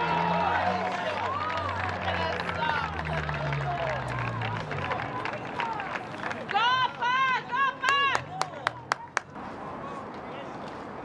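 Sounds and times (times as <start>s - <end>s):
people shouting and cheering: 0.0s - 9.2s.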